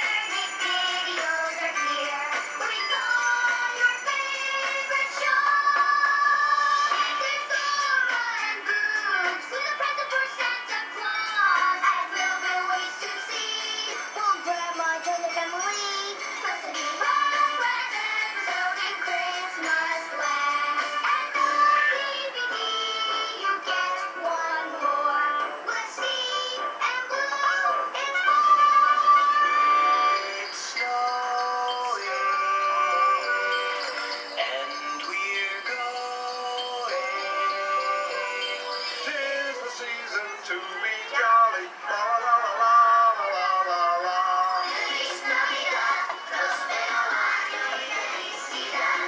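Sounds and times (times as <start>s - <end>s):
song playing from tv speaker: 0.0s - 49.0s.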